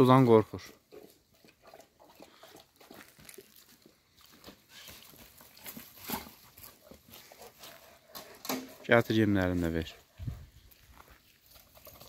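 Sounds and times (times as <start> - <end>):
man speaking: 0.0 - 0.7, 8.8 - 10.0.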